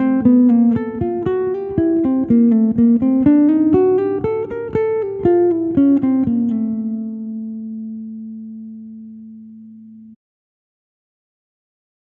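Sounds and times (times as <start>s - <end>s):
nylon-string guitar jazz line: 0.0s - 10.2s.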